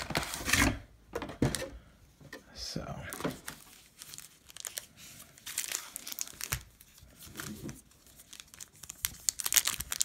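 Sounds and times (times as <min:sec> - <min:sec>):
foil packs rustling: 0:03.3 - 0:10.0.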